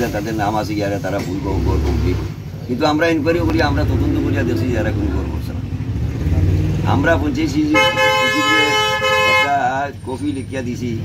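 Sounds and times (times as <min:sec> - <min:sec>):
men talking: 0:00.0 - 0:11.0
vehicle horn blast: 0:07.6 - 0:09.7.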